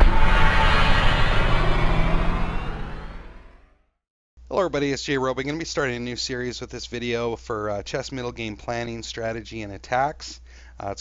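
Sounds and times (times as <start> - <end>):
sustained final hit ringing: 0.0 - 3.6.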